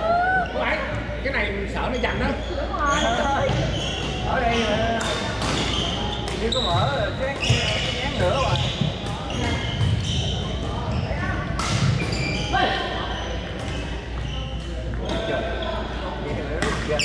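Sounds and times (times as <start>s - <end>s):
sneakers squeaking on floor: 0.4s - 17.0s.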